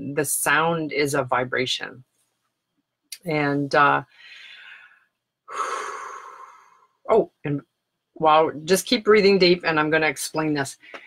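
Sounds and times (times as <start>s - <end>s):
woman's breathy exhale: 4.2s - 6.9s.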